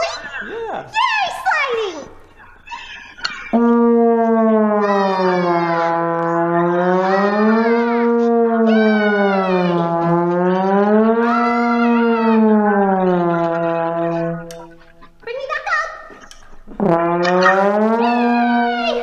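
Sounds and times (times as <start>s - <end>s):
trombone slide glissandi: 3.5s - 14.9s, 16.8s - 18.8s.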